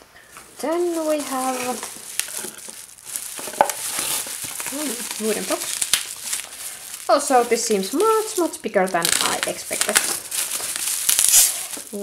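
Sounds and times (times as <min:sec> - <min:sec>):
bubble wrap crinkling: 0:00.3 - 0:12.0.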